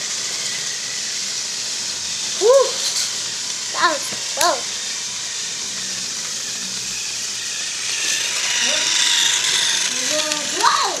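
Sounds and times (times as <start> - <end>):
toy train motor whirring: 0.0 - 11.0.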